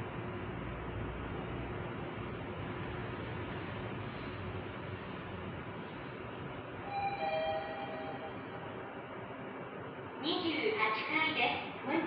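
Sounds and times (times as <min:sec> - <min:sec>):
elevator car running noise: 0:00.0 - 0:12.0
two-tone elevator chime: 0:06.9 - 0:08.8.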